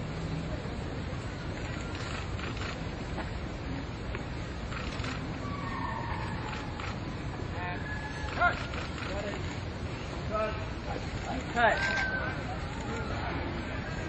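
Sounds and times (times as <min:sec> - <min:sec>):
faint distant voices: 0:00.0 - 0:14.0
outdoor background noise: 0:00.0 - 0:14.0.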